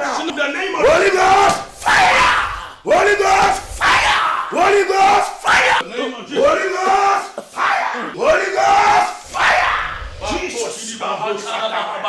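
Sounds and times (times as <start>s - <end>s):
long drawn-out cry: 0.8s - 5.8s, 6.9s - 10.5s.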